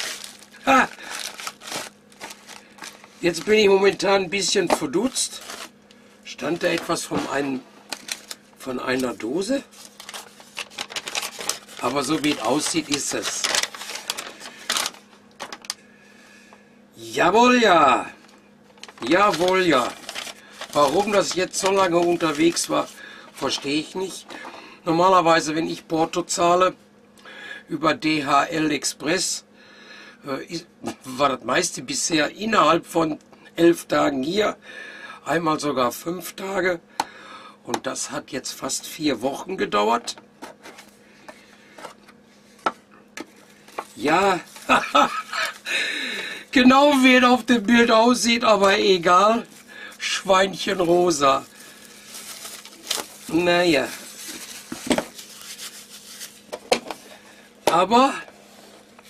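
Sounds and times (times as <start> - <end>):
paper rustling: 0.0 - 5.7, 6.4 - 15.7, 18.8 - 24.5, 43.2 - 45.7, 46.6 - 57.2
paper crackles: 0.0 - 15.8, 18.7 - 24.5, 43.3 - 45.7, 46.6 - 57.1
soft rustling: 51.4 - 56.5.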